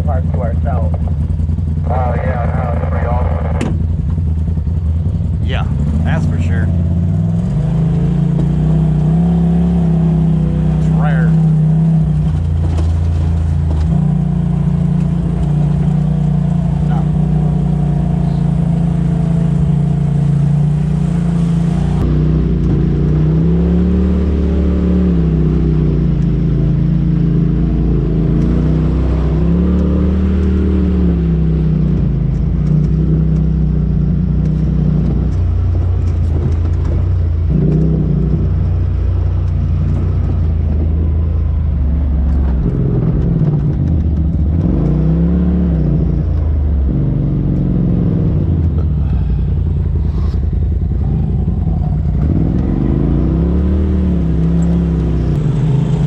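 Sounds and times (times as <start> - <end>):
off-road vehicle engine revving: 0.0 - 56.0.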